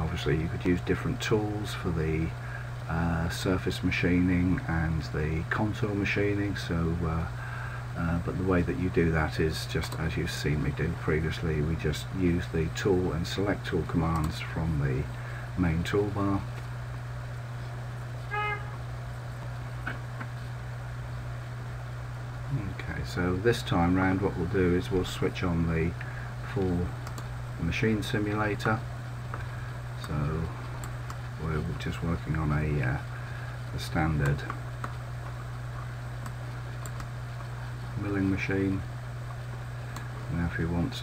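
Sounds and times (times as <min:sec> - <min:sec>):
low electrical hum: 0:00.0 - 0:41.0
faint clicks: 0:09.8 - 0:10.1, 0:14.1 - 0:14.4, 0:26.0 - 0:27.3, 0:28.6 - 0:31.2, 0:34.2 - 0:37.6
short pitched beep: 0:18.3 - 0:18.8
computer clicks: 0:27.0 - 0:27.3, 0:36.2 - 0:37.2.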